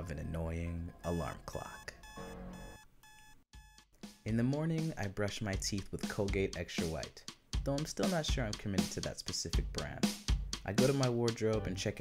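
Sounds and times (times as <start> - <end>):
alarm clock beeping: 0.9 - 4.3.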